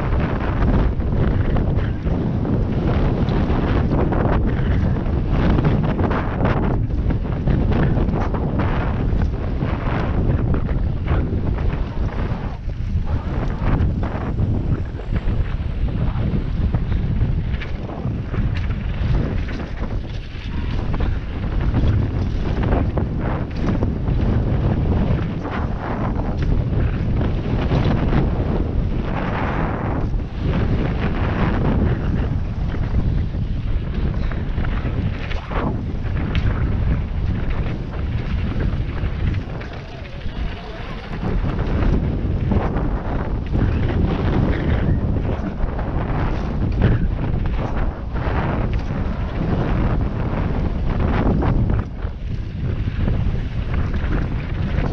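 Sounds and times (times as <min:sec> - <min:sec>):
bike knocks and rattles: 0:00.0 - 0:54.9
tyres on dirt and gravel: 0:00.0 - 0:54.9
wind buffeting microphone: 0:00.0 - 0:54.9.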